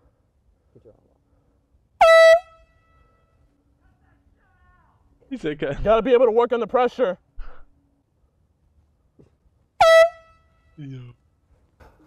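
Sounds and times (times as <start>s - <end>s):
air horn blast: 2.0s - 3.5s, 9.8s - 10.8s.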